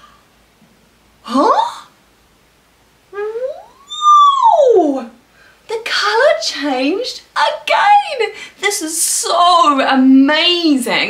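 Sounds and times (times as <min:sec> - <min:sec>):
woman's rising wordless ooh: 0:03.1 - 0:05.2.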